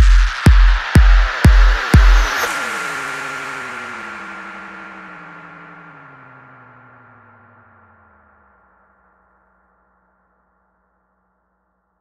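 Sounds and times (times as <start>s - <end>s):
kick drum hit: 0.0s - 2.5s
steady high tone: 0.0s - 3.1s.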